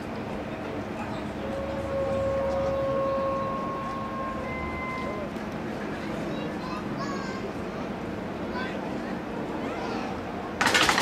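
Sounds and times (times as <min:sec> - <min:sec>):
low engine rumble: 0:00.0 - 0:11.0
train wheels squealing: 0:01.2 - 0:05.4.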